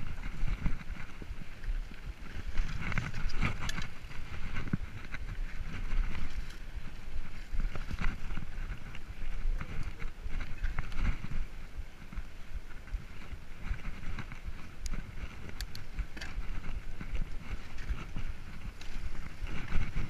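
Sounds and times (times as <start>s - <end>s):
bike rattling over bumps: 0.0s - 20.0s
bike tyre noise: 0.0s - 20.0s
wind rumbling on microphone: 0.0s - 20.0s.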